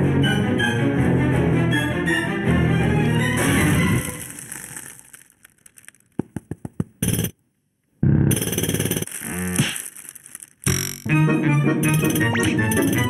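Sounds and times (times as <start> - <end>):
cartoon music: 10.7 - 13.0.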